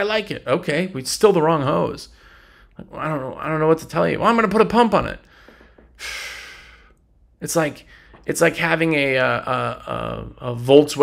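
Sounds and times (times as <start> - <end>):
man sighing: 5.3 - 7.0.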